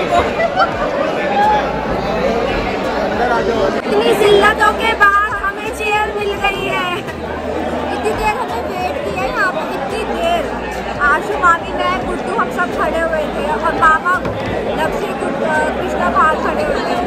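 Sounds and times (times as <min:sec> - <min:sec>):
many voices talking: 0:00.0 - 0:17.0.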